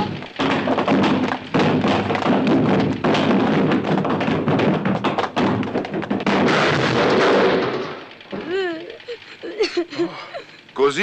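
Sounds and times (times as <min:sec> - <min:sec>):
comic scuffle thumps and knocks: 0:00.0 - 0:08.0.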